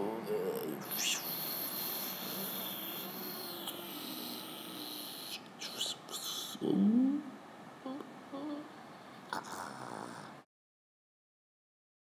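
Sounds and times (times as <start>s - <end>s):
faint vocal sound: 0.0s - 10.5s.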